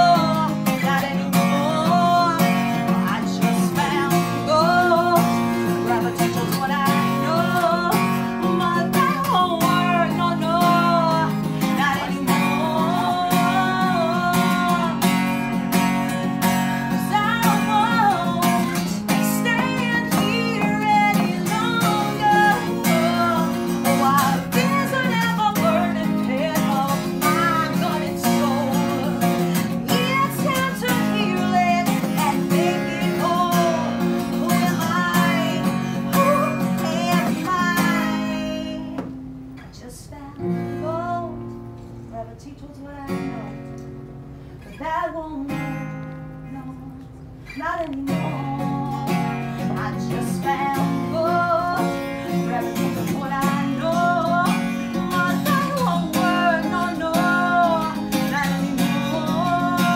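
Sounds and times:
woman singing: 0.0 - 44.0, 44.6 - 59.9
acoustic guitar strumming: 0.0 - 59.9.

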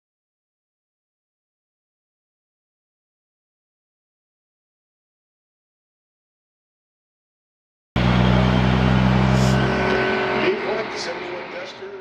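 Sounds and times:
car engine running: 8.0 - 11.6
voice: 9.4 - 12.0.

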